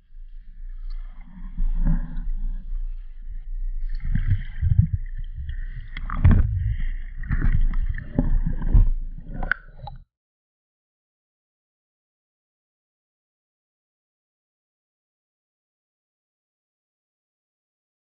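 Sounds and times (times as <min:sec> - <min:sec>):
muffled underwater thumps: 0:04.0 - 0:10.0.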